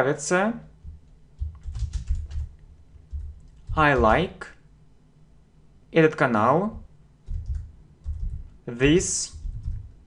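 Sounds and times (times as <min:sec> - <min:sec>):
keyboard typing: 0:00.8 - 0:04.3, 0:06.7 - 0:09.9.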